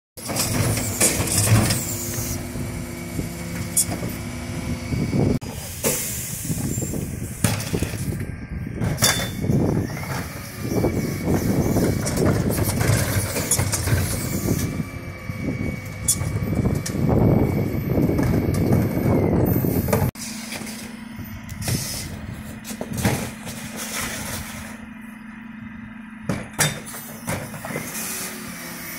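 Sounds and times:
diesel engine running: 0.2s - 28.9s
hydraulic bin lifters: 0.2s - 28.9s.

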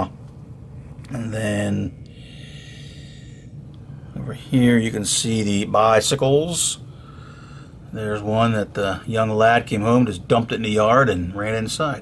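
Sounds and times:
soft breath into microphone: 2.1s - 4.2s, 6.8s - 7.9s.

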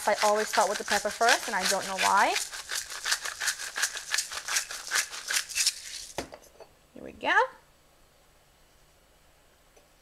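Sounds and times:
pepper mill grinding: 0.0s - 6.2s.

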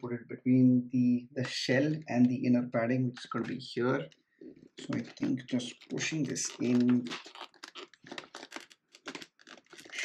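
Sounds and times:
plastic mount scraping and crackling: 4.6s - 10.0s.

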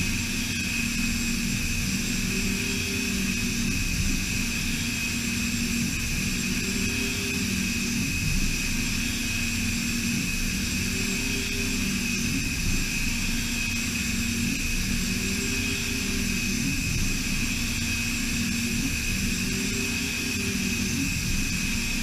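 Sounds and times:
mill spindle high whine: 0.0s - 22.0s.

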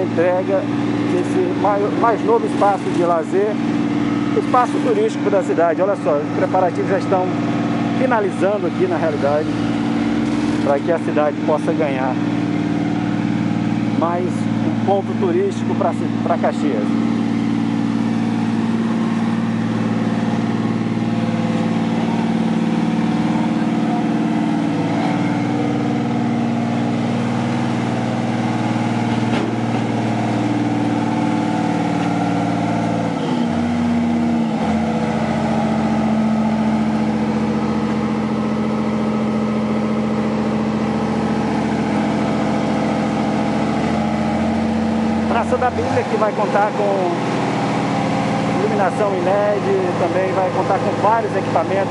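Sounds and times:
asphalt paver diesel engine: 0.0s - 51.9s.

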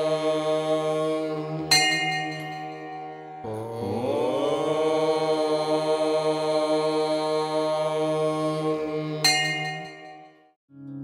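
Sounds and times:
chanted note: 0.0s - 7.1s, 7.7s - 10.5s.

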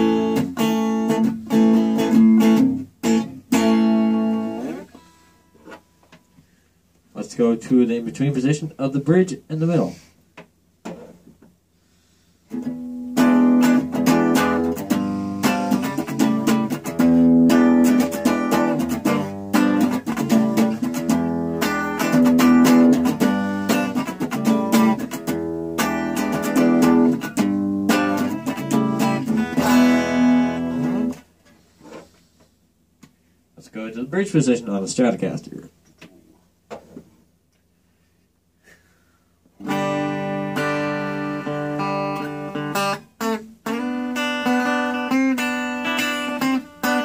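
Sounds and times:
clean electric guitar riff: 0.0s - 5.8s, 12.5s - 31.3s, 39.6s - 47.0s.

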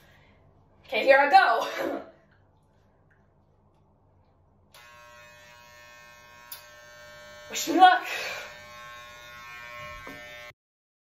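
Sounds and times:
electric hair clippers buzzing: 4.8s - 10.6s.

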